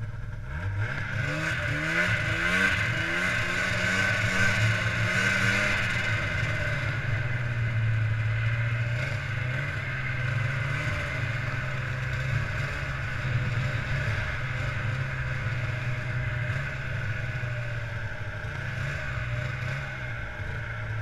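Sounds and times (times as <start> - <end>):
snowmobile engine accelerating: 0.0 - 21.0.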